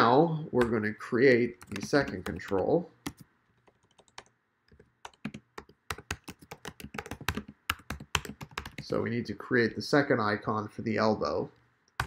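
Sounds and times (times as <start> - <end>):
typing on computer keyboard: 1.6 - 9.0.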